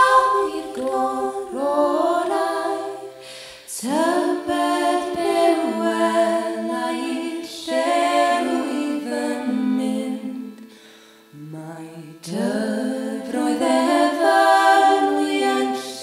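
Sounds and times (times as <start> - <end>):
voices singing in harmony: 0.0 - 16.0.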